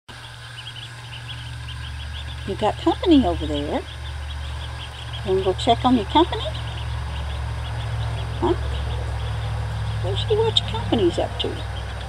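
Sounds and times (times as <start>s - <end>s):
ducklings peeping: 0.1s - 12.0s
steady low rumble: 0.1s - 12.0s.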